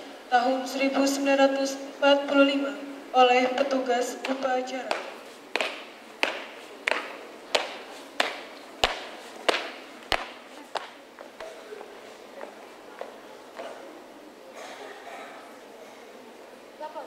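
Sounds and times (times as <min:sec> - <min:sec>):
marching footsteps on pavement: 0:04.2 - 0:13.2.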